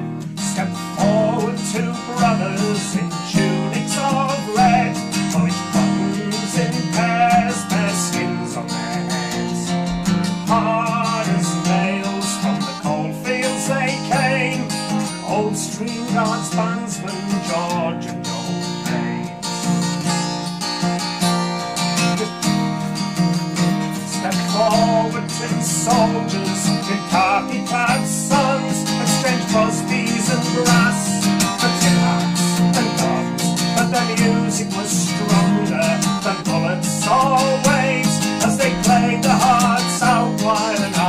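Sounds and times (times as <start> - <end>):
man singing: 0.0 - 20.4, 22.0 - 41.0
strummed acoustic guitar: 0.0 - 41.0.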